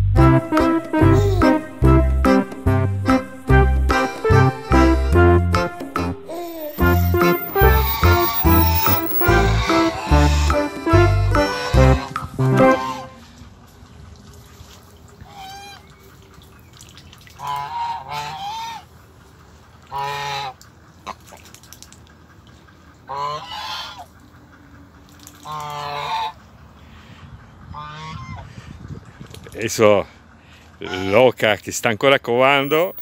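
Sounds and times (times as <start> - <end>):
geese honking: 0.5 - 13.2, 17.4 - 18.9, 19.9 - 20.6, 23.0 - 24.4, 25.4 - 28.5, 32.4 - 33.0.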